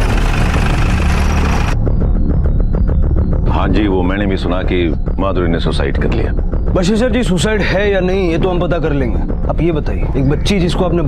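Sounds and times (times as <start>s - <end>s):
vehicle engine idling: 0.0s - 1.8s.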